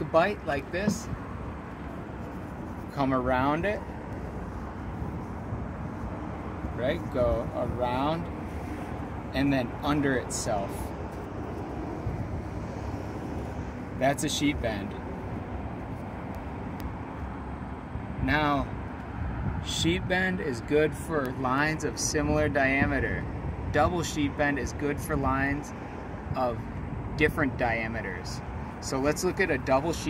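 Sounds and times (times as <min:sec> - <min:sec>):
low outdoor rumble: 0:00.0 - 0:18.8.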